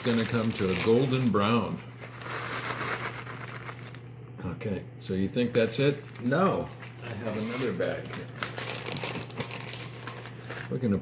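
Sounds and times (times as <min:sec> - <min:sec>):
plastic bag crinkling: 0:00.0 - 0:04.0, 0:05.7 - 0:10.8.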